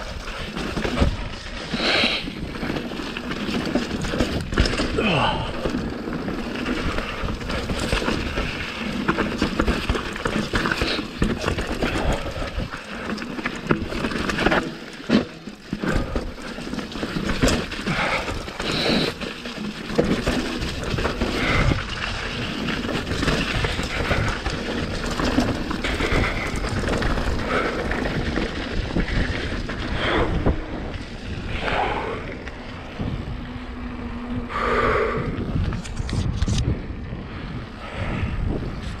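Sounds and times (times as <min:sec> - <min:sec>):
bike frame rattling and knocking: 0:00.0 - 0:34.3
bike tyres rolling over dirt: 0:00.0 - 0:39.0
wind on microphone: 0:25.8 - 0:39.0.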